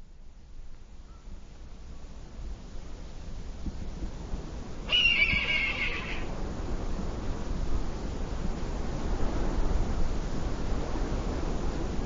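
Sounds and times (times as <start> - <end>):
high wavering animal call: 4.9 - 6.3.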